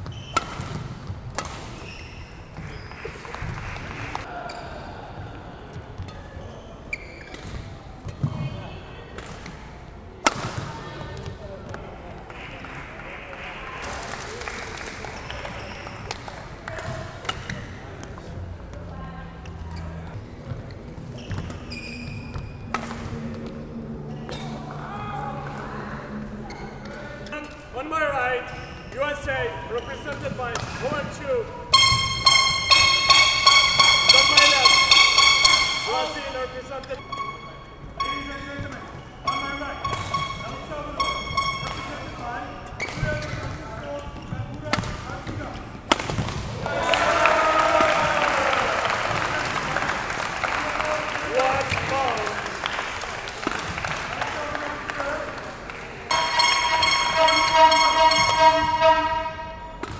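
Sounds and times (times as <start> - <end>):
shoes squeaking on court floor: 0.0 - 3.2, 5.8 - 8.6, 19.7 - 23.5, 28.4 - 31.1, 31.7 - 45.8, 56.1 - 59.9
racket striking shuttlecock: 0.3 - 1.9, 10.2 - 10.6, 22.7 - 23.6, 31.7 - 42.2, 45.9 - 46.5, 56.1 - 59.1
voices: 22.7 - 45.8, 46.6 - 59.7
high rapidly pulsing tone: 31.7 - 42.2, 56.1 - 59.5.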